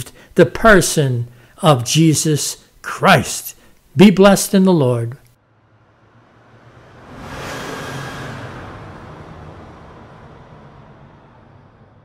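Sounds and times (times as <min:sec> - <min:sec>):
rushing whoosh: 0:05.5 - 0:12.0.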